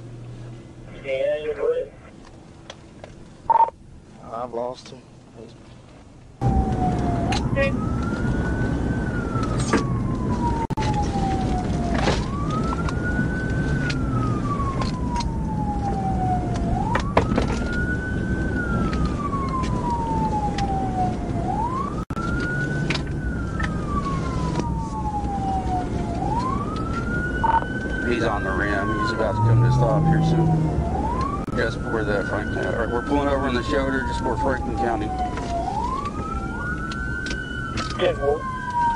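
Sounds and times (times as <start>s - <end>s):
car road rumble: 0.0s - 38.9s
police siren wailing: 6.4s - 38.9s.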